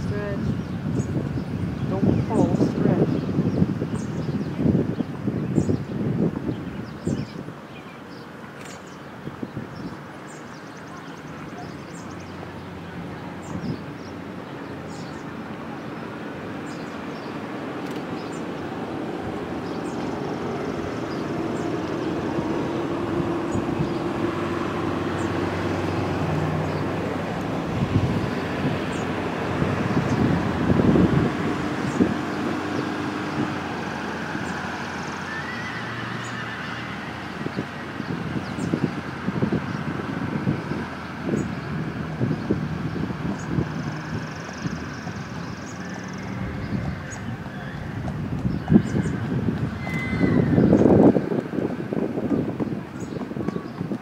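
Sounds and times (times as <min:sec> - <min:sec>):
outdoor background noise: 0:00.0 - 0:54.0
hooves on sand: 0:45.0 - 0:54.0.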